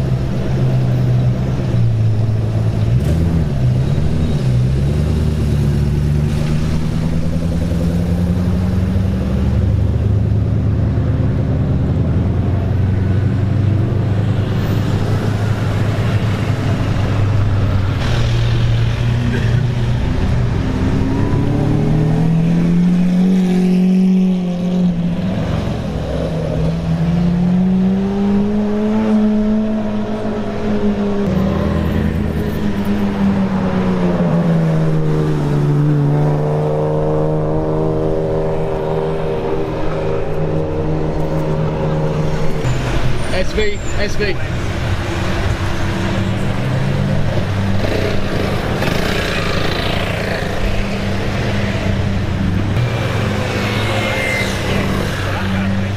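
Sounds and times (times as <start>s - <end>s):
supercar engines revving: 0.0s - 55.9s.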